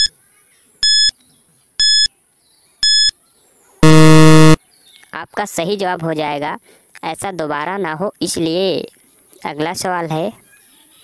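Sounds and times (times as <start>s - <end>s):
short high beeps: 1.8s - 2.1s, 2.8s - 3.1s, 3.8s - 4.6s
low buzzer: 3.8s - 4.6s.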